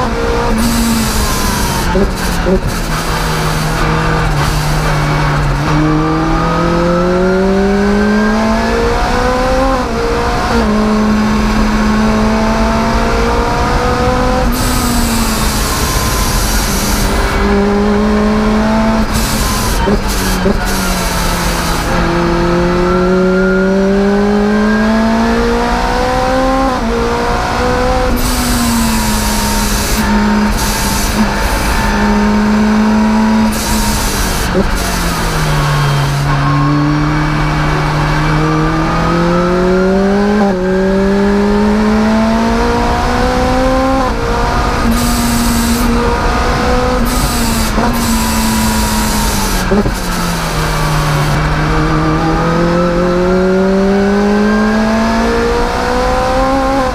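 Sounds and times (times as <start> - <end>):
car engine revving: 0.0 - 56.9.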